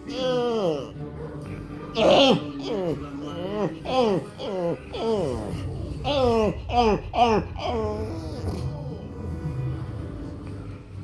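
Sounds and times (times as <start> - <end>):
faint sustained music tones: 0.0 - 11.0.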